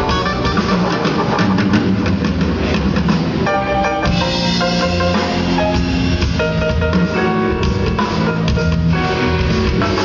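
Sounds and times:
jazz-funk band playing live: 0:00.0 - 0:10.0
rapid drum and cymbal strokes: 0:00.0 - 0:10.0.

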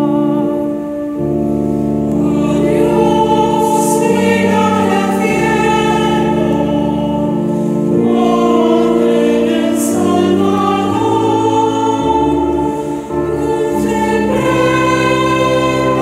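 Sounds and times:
choir singing a hymn: 0:00.0 - 0:16.0.

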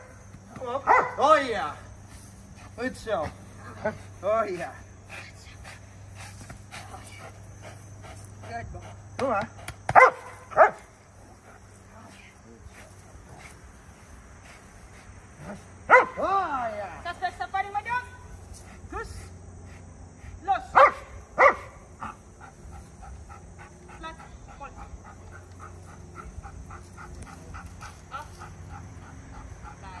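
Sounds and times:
dog barking: 0:00.8 - 0:01.2, 0:09.9 - 0:10.8, 0:15.9 - 0:16.2, 0:20.7 - 0:22.2
dog panting: 0:02.1 - 0:10.1, 0:22.0 - 0:30.0.

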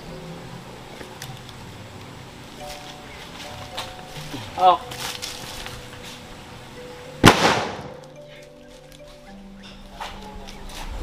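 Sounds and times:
carbide cannon boom: 0:07.2 - 0:08.0.

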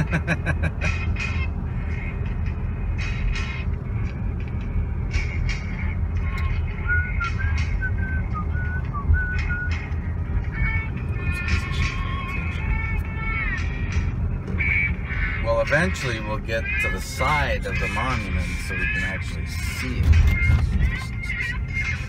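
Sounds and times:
person laughing: 0:00.0 - 0:01.1
truck engine rumble from inside cab: 0:00.0 - 0:22.0
person whistling: 0:06.8 - 0:09.8.

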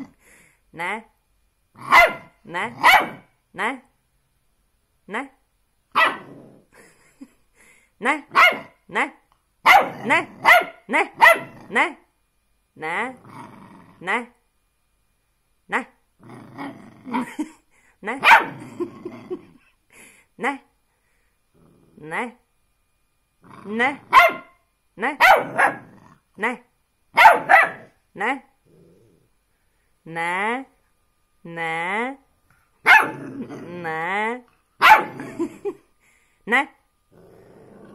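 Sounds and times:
puppy barking and yapping: 0:01.9 - 0:03.3, 0:05.9 - 0:06.3, 0:08.3 - 0:08.8, 0:09.6 - 0:11.5, 0:18.2 - 0:18.6, 0:24.1 - 0:24.6, 0:25.2 - 0:25.9, 0:27.2 - 0:27.9, 0:32.8 - 0:33.2, 0:34.8 - 0:35.4
puppy growling faintly: 0:21.5 - 0:22.4, 0:27.8 - 0:29.5, 0:37.1 - 0:37.9.

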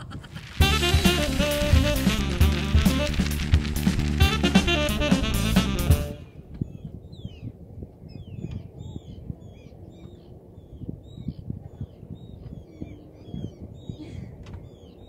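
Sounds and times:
wind rumble on microphone: 0:00.0 - 0:15.0
birds calling rapidly: 0:08.1 - 0:15.0.

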